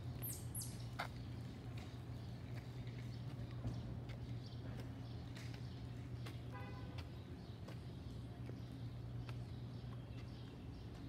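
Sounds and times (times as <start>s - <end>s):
footsteps on concrete: 0.9s - 11.0s.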